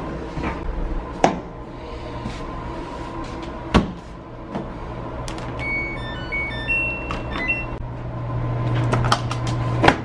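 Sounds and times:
high electronic beeps tune: 0:05.6 - 0:07.8.

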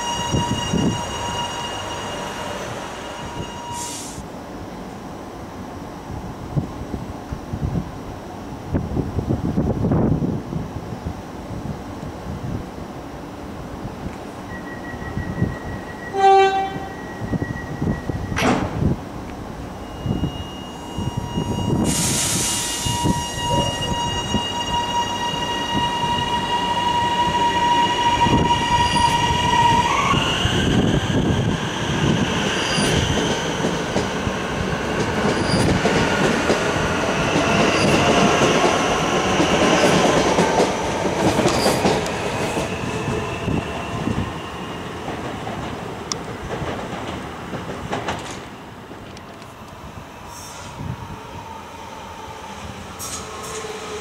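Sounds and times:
electric train whine: 0:00.0 - 0:04.8, 0:13.8 - 0:54.0.

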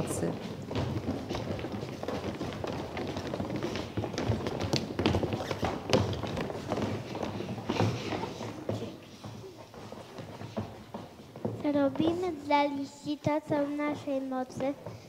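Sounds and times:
children's footsteps running on stage: 0:00.0 - 0:15.0.

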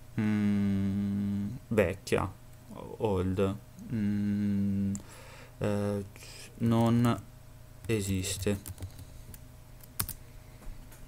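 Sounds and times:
computer keyboard keystrokes: 0:07.8 - 0:10.2.

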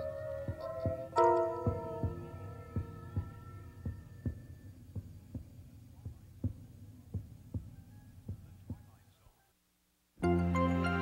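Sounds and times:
soft low thumps: 0:00.0 - 0:09.0.

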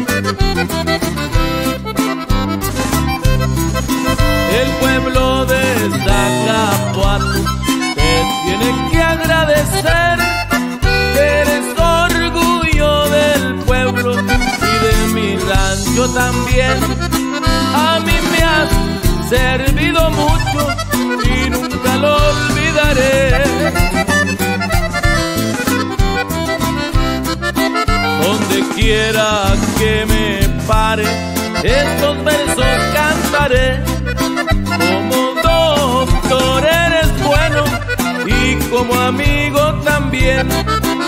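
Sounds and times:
bass: 0:00.0 - 0:41.0
guitar: 0:00.0 - 0:41.0
reedy lead melody: 0:00.0 - 0:41.0
steady rhythmic beat: 0:00.0 - 0:41.0.

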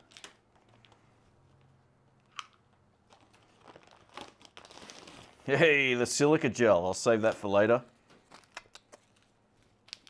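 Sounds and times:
faint clicks and rustles of packing: 0:00.0 - 0:05.5, 0:07.2 - 0:10.0.

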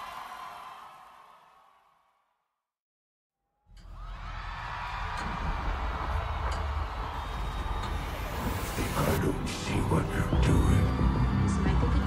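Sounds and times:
crowd noise: 0:04.2 - 0:12.0.

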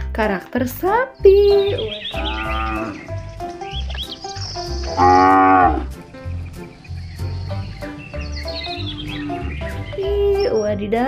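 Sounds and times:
background music with steady beat: 0:00.0 - 0:11.0
cattle mooing: 0:01.6 - 0:03.1, 0:04.8 - 0:06.0, 0:08.5 - 0:10.4.

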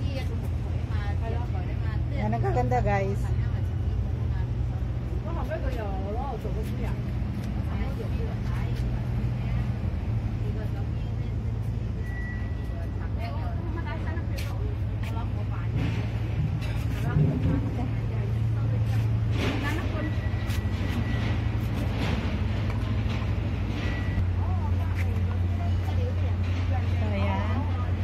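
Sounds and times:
low mechanical hum: 0:00.0 - 0:28.0.

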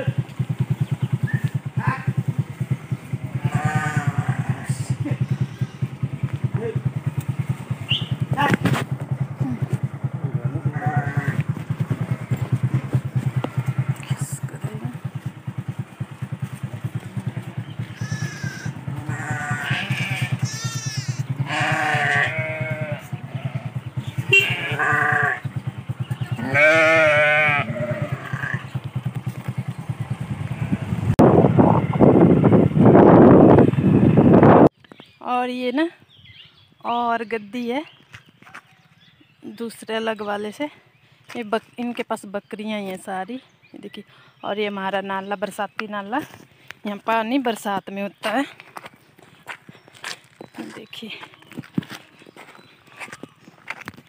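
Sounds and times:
engine throbbing at low speed: 0:00.0 - 0:34.7
sheep and goats bleating: 0:03.2 - 0:06.1, 0:10.6 - 0:14.4, 0:16.8 - 0:28.8, 0:31.7 - 0:32.6.

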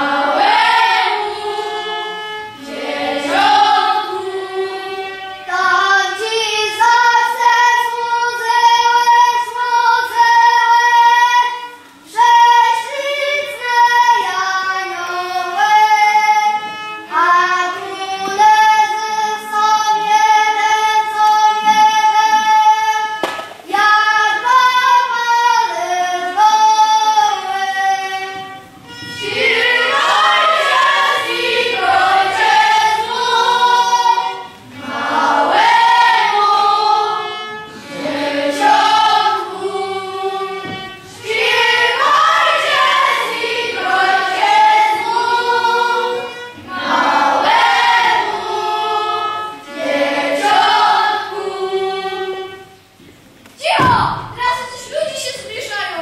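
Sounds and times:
children's choir singing: 0:00.0 - 0:56.0.

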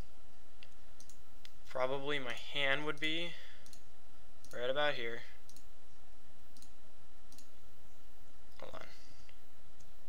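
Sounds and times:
steady low hum: 0:00.0 - 0:10.0
computer mouse clicks: 0:00.6 - 0:01.6, 0:02.3 - 0:04.6, 0:05.4 - 0:05.7, 0:06.5 - 0:07.5.

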